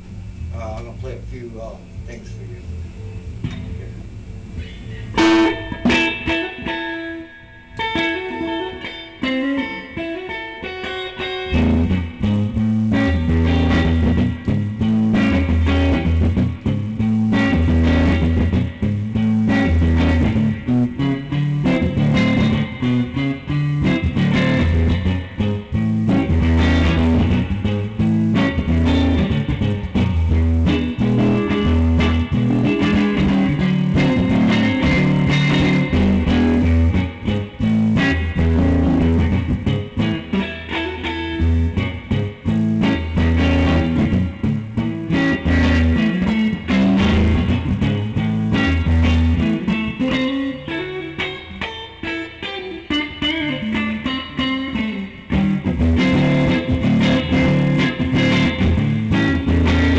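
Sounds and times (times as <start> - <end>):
electric guitar riff and chords: 0.0 - 59.9.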